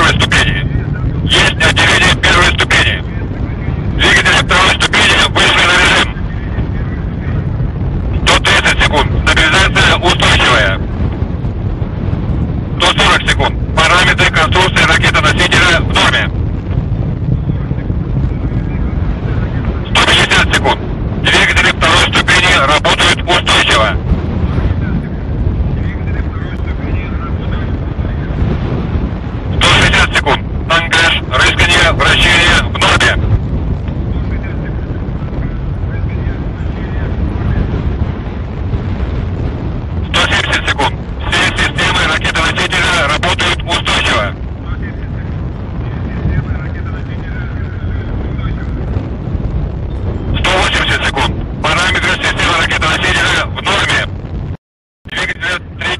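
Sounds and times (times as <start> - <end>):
person speaking callouts over radio: 0.0 - 3.1, 4.0 - 6.2, 8.2 - 10.8, 12.8 - 16.3, 19.4 - 24.0, 29.6 - 33.2, 40.1 - 45.2, 50.3 - 54.1, 55.1 - 55.9
steady low rumbling noise: 0.0 - 55.9.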